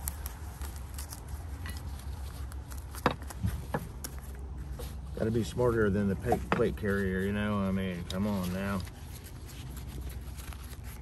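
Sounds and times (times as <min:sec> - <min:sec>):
nylon fabric rustling: 0:00.0 - 0:11.0.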